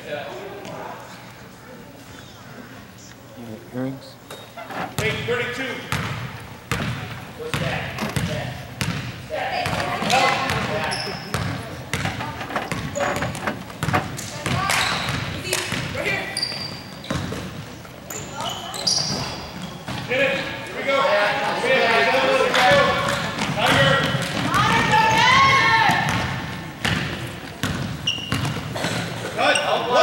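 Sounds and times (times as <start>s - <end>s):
sneakers squeaking: 4.2s - 20.7s, 22.7s - 30.0s
spectators' voices and shouts: 20.0s - 27.6s.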